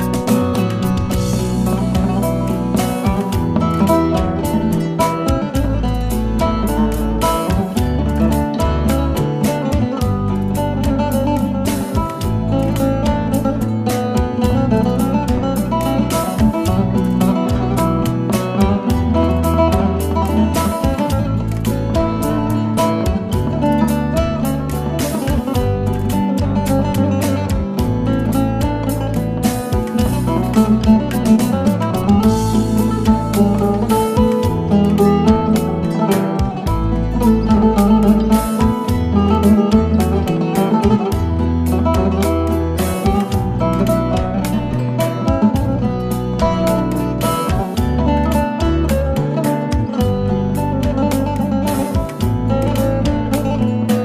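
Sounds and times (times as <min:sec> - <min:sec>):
backing track bass and percussion: 0:00.0 - 0:54.0
saz folk melody: 0:00.0 - 0:54.0.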